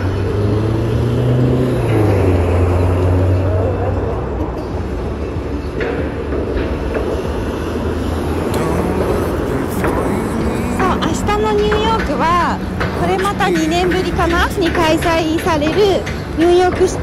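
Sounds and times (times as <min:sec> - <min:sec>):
cars driving past: 0:00.0 - 0:17.0
person speaking: 0:08.4 - 0:15.1.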